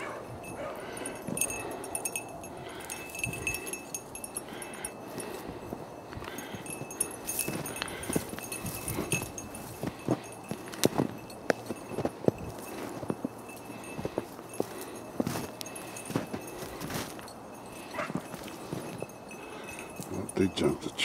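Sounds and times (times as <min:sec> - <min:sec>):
footsteps crunching in snow: 0:02.6 - 0:20.3.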